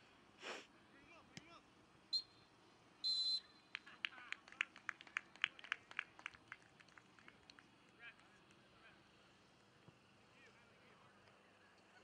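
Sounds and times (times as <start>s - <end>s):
referee's whistle blast: 3.0s - 3.6s.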